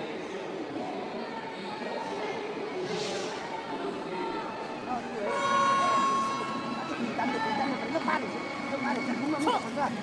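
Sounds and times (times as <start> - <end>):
arena crowd noise: 0.0 - 10.0
loud steady horn tone: 5.2 - 6.8.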